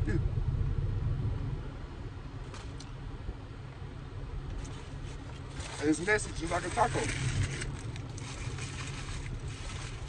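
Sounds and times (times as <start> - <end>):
paper food wrapper rustling: 4.6 - 10.0.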